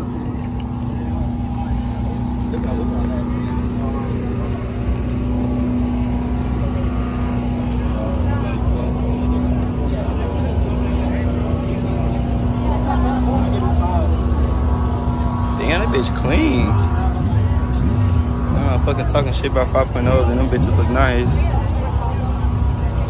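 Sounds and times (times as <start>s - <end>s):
engine drone: 0.0s - 23.0s
faint crowd voices: 0.0s - 23.0s.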